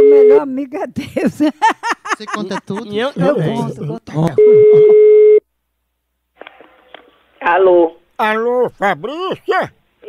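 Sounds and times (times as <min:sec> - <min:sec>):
telephone ringback tone: 0:04.4 - 0:05.4.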